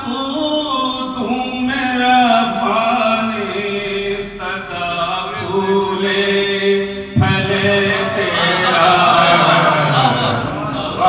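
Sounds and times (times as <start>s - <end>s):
man chanting into microphone: 0.0s - 11.0s.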